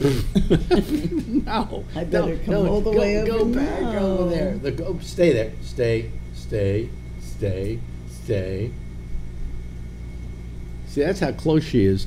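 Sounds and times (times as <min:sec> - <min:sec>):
low rumble with hum: 0:00.0 - 0:12.0.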